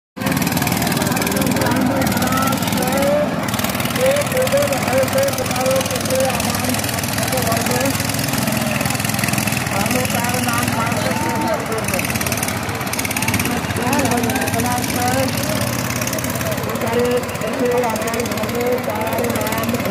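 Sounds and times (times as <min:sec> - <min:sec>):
diesel tiller engine running: 0:00.2 - 0:19.9
voices shouting: 0:00.2 - 0:19.9.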